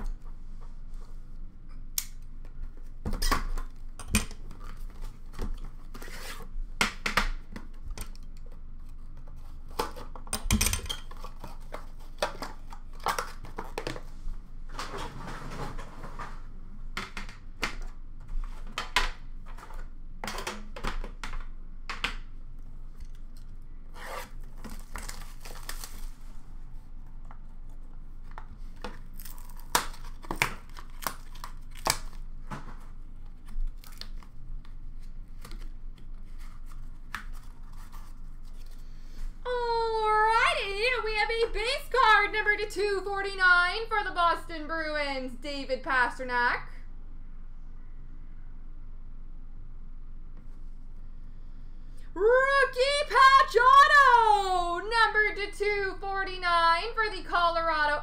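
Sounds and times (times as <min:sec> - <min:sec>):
plastic shrink wrap tearing: 0:24.0 - 0:26.3, 0:29.1 - 0:32.2.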